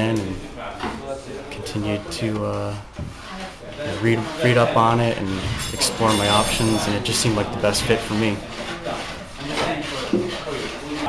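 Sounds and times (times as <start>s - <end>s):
hand tool rasping wood: 3.1s - 11.0s
person talking: 5.7s - 8.0s.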